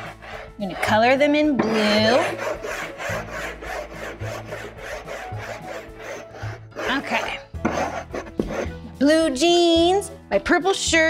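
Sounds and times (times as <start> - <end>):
chalk scrubbing on chalkboard: 0.0 - 1.1, 1.7 - 8.8.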